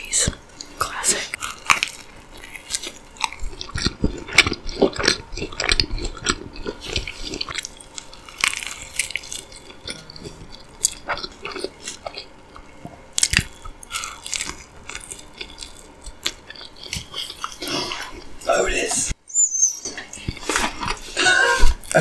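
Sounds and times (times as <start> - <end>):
chewing and biting sandwich: 0.3 - 18.4, 19.8 - 22.0.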